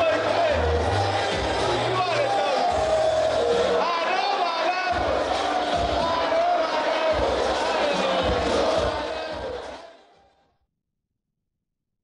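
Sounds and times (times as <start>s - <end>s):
crowd shouting and chanting: 0.0s - 10.4s.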